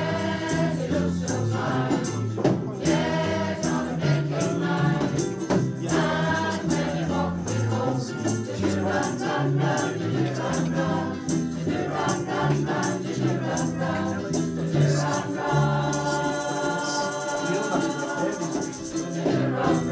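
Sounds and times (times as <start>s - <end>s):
rattling percussion beat: 0.0s - 19.9s
women's choir singing: 0.0s - 19.9s.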